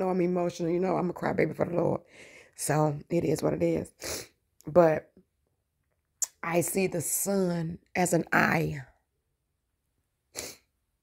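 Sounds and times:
sharp sniff through the nose: 0:10.4 - 0:10.7.

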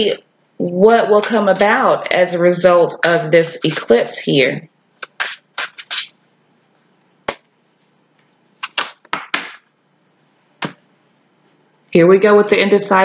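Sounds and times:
sharp card clicks: 0:05.0 - 0:06.1, 0:08.6 - 0:09.7
cards shuffling swishes: 0:05.0 - 0:09.6.

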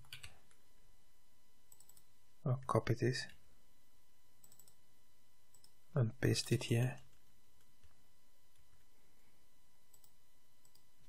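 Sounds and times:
keyboard and mouse clicks: 0:01.7 - 0:02.1, 0:04.4 - 0:04.8, 0:09.9 - 0:10.9.

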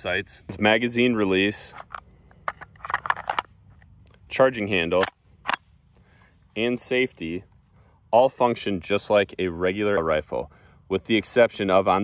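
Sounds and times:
rifle magazine clicking into place: 0:01.8 - 0:03.5, 0:05.0 - 0:05.6.

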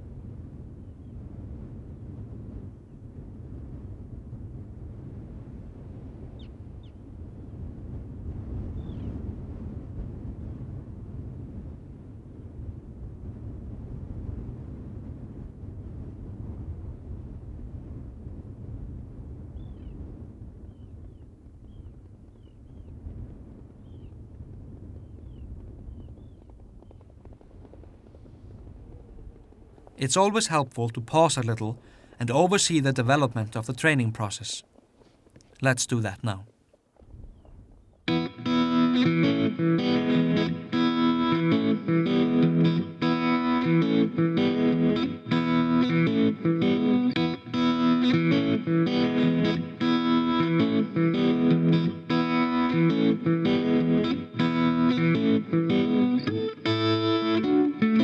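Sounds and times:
wind: 0:00.0 - 0:58.0
high bird calls: 0:08.7 - 0:09.2, 0:19.5 - 0:20.0, 0:20.6 - 0:23.0, 0:23.8 - 0:24.2, 0:25.2 - 0:27.1.

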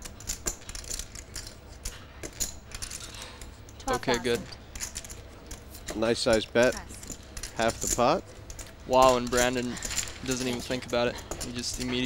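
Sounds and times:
poker chips clicking: 0:00.0 - 0:06.4
low room hum: 0:00.0 - 0:12.0.

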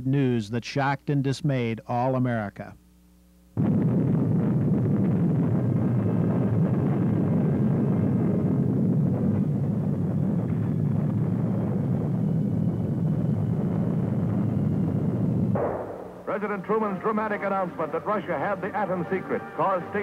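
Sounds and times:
deep explosion rumble: 0:03.6 - 0:19.0.

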